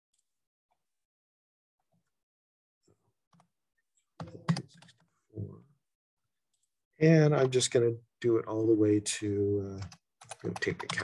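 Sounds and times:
typing on computer keyboard: 9.8s - 11.0s.

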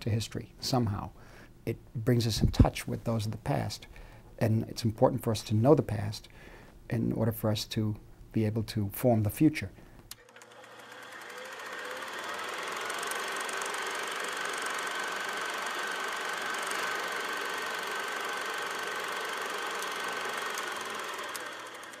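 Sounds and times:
faint steady whine: 0.0s - 10.3s
machine running with fine clatter: 10.2s - 22.0s.

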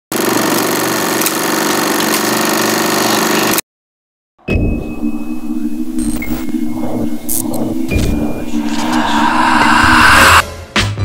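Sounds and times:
low steady drone: 4.6s - 10.4s
hiss-like whoosh: 5.4s - 10.4s.

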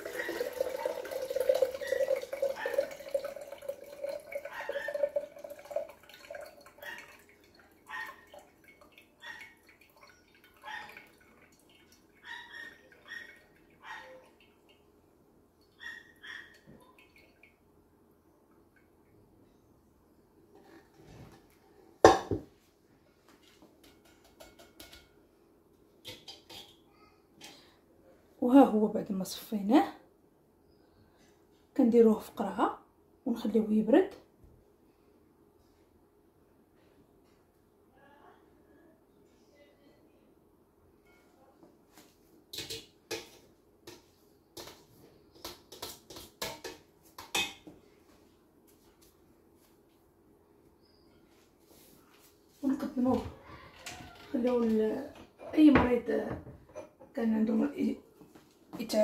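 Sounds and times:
glass pitcher clinking: 0.0s - 11.7s
kitchen utensils clattering: 42.5s - 43.4s.

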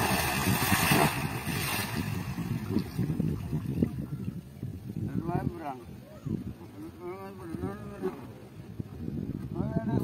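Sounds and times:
big fish splashing into water: 0.0s - 3.5s.

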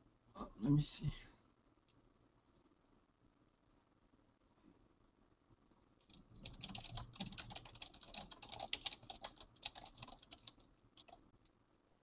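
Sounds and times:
computer keyboard typing: 6.0s - 11.2s.

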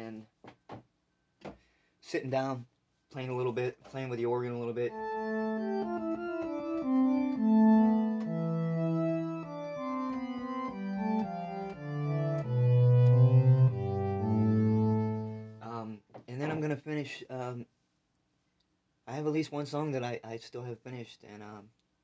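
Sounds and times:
organ chords on electronic keyboard: 4.1s - 15.8s
man's voice: 15.6s - 17.6s.

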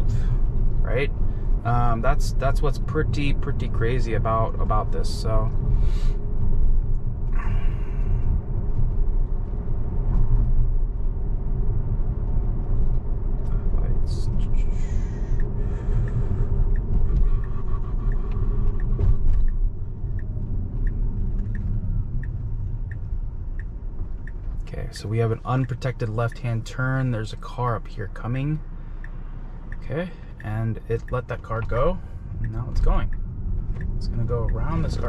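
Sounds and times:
turn signal ticking: 0.0s - 35.0s
tyres rumbling on road: 0.0s - 35.0s.

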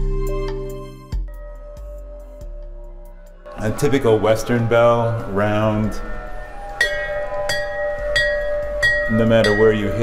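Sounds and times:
small metal bell struck: 6.8s - 9.9s.

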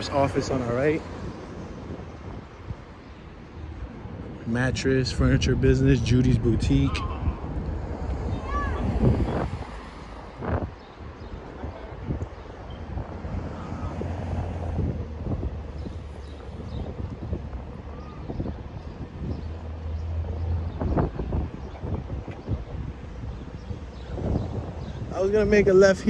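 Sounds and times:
passing traffic rumble: 0.0s - 26.0s
wind buffeting microphone: 0.0s - 26.0s.

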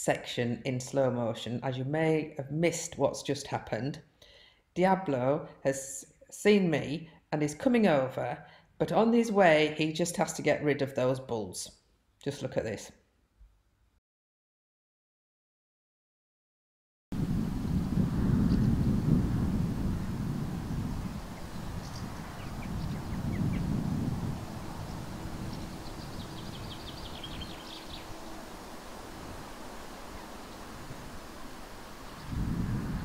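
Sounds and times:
wind buffeting microphone: 17.1s - 33.0s
small bird trilling: 25.5s - 28.1s.

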